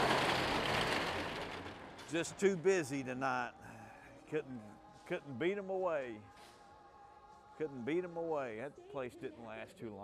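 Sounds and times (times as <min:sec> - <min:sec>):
metal security shutter rattling: 0:00.0 - 0:02.5.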